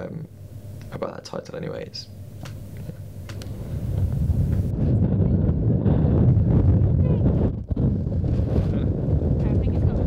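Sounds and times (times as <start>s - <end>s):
wind buffeting microphone: 2.4s - 10.0s.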